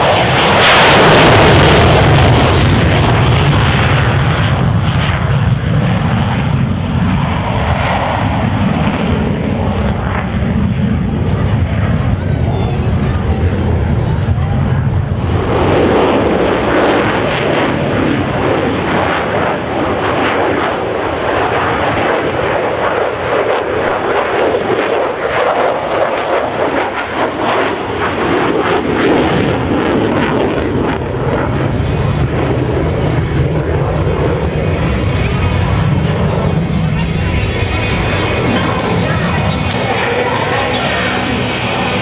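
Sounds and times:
fighter jet flying past: 0:00.0 - 0:42.0.

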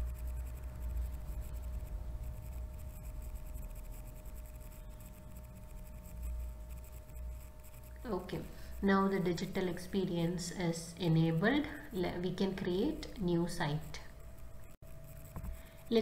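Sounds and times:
low room rumble: 0:00.0 - 0:16.0.

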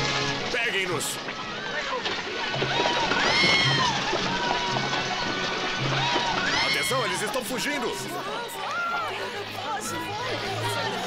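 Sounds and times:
shouts and high cries: 0:01.3 - 0:07.5
woman screaming: 0:03.2 - 0:04.0.

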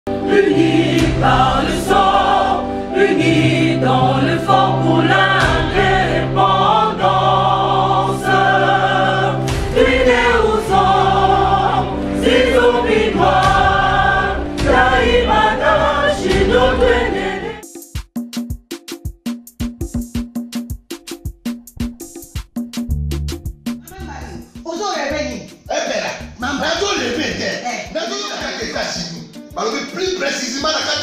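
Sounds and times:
choir singing: 0:00.1 - 0:17.6
quick percussive beat: 0:17.6 - 0:31.0
steady bass line: 0:21.7 - 0:24.5.

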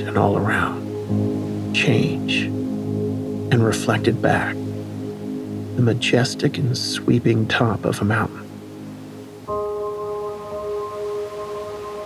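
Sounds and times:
soft ambient wash: 0:00.0 - 0:12.0
bell-like tone ringing: 0:09.6 - 0:12.0.

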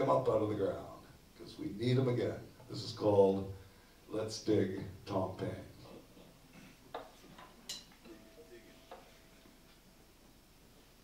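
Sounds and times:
faint held tone: 0:08.0 - 0:10.0.

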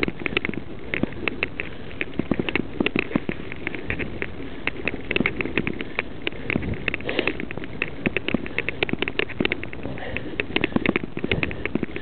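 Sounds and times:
mountain bike rattling over rocks: 0:00.0 - 0:12.0
steady rushing noise: 0:00.0 - 0:12.0.

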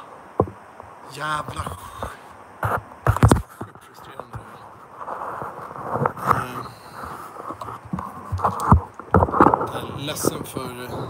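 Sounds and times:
low indistinct muttering: 0:00.0 - 0:11.0
phone handling rubbing: 0:01.5 - 0:10.5.

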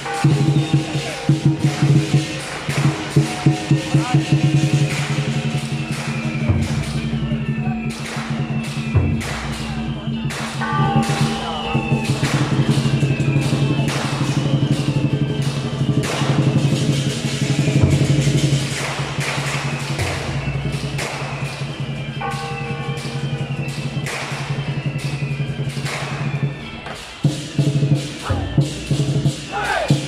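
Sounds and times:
cymbal crashes: 0:00.0 - 0:07.3, 0:07.9 - 0:30.0
large drum roll: 0:10.0 - 0:21.2.

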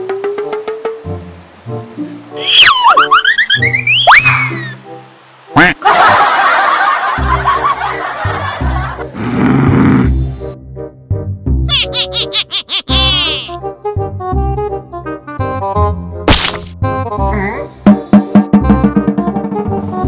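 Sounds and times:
cartoon pitch glide: 0:02.4 - 0:04.8, 0:11.7 - 0:13.6
comedy background music: 0:02.4 - 0:04.8, 0:05.5 - 0:06.3, 0:07.0 - 0:10.6, 0:11.4 - 0:20.0
laughter: 0:05.8 - 0:09.1, 0:11.7 - 0:13.3
cartoon boings: 0:11.7 - 0:13.6.

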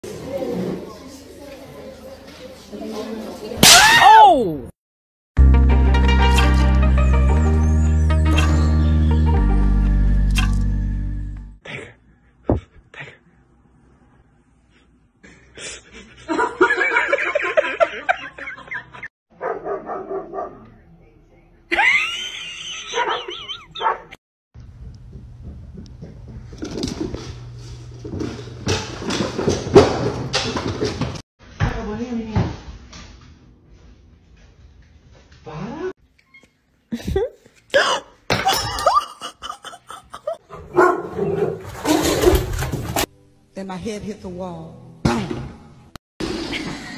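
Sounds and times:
dog barking and yelping: 0:19.4 - 0:20.6, 0:22.9 - 0:24.2, 0:40.5 - 0:41.6.

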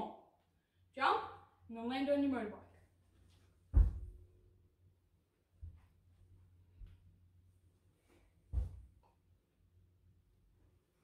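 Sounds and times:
jump landing thud on rug: 0:03.7 - 0:04.2, 0:08.5 - 0:08.9
soft footstep thud: 0:03.7 - 0:04.2, 0:08.5 - 0:08.9.

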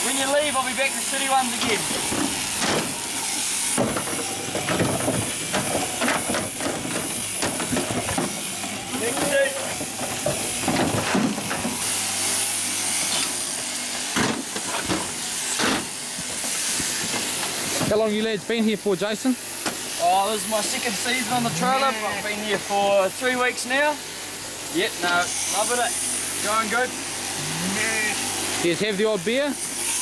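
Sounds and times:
shearing handpieces hissing: 0:00.0 - 0:30.0
knocks and clatter: 0:03.8 - 0:08.4.

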